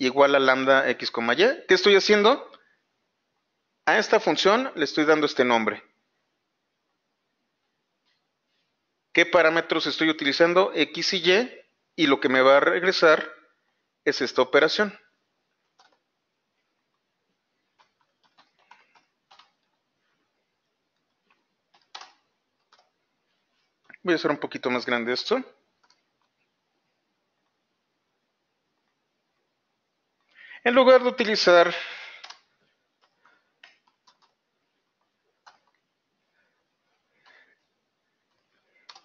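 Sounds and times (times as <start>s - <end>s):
faint keyboard keystrokes: 15.6s - 16.1s, 17.6s - 19.8s, 20.9s - 23.0s, 25.8s - 26.4s, 32.2s - 34.4s, 35.0s - 35.8s, 38.2s - 39.0s.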